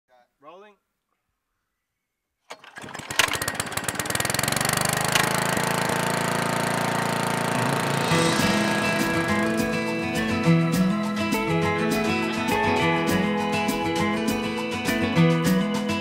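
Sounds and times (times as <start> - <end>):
lawn mower engine starting: 2.5 - 11.2
guitar music: 6.9 - 16.0.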